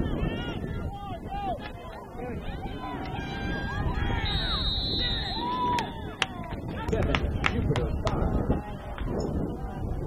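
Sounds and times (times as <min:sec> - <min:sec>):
outdoor field noise: 0:00.0 - 0:10.0
people shouting: 0:02.4 - 0:06.7
referee's whistle blast: 0:04.1 - 0:06.0.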